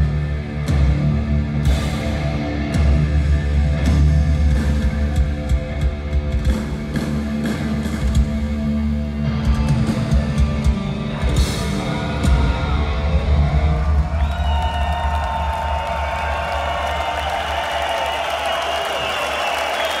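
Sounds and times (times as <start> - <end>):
heavy metal band playing live: 0.0 - 17.6
crowd cheering: 9.2 - 20.0.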